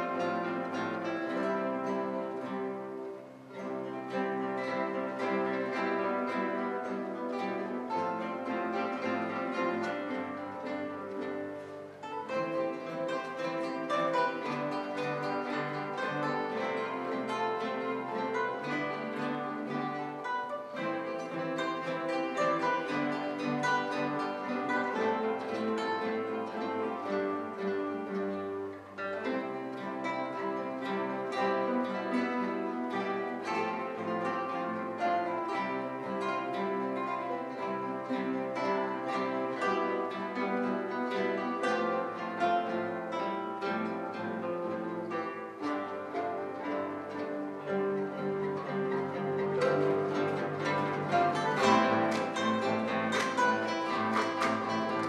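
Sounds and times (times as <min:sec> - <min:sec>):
classical guitar ensemble playing: 0:00.0 - 0:55.0.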